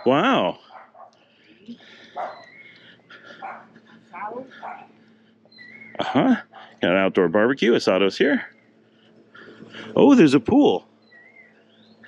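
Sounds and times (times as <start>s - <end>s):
faint dog barking: 0.0s - 1.2s, 1.8s - 2.6s, 3.2s - 5.0s, 6.1s - 6.8s
low steady hum: 0.0s - 12.0s.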